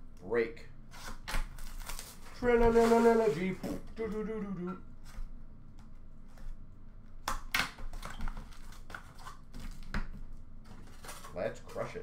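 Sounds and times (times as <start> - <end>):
wrapper and cardboard rustling: 1.5 - 3.6, 10.6 - 12.0.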